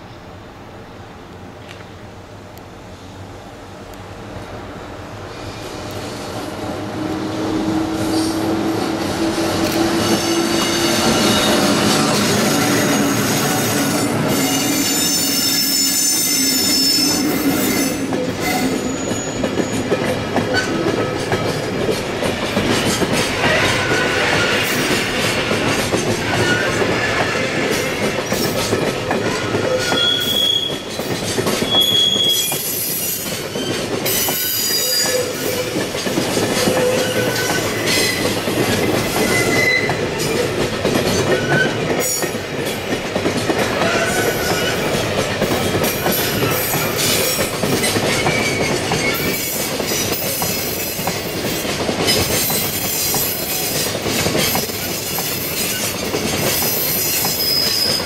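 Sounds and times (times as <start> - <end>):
freight wagons rolling on rails: 7.4 - 58.0
wheel squeals: 9.9 - 20.9, 29.2 - 35.8, 36.6 - 40.4, 46.0 - 50.9, 55.2 - 58.0.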